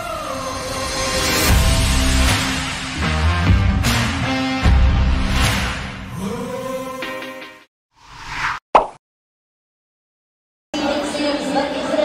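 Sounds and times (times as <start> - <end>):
background music: 0.0 - 7.7
whoosh sound effect: 8.0 - 8.9.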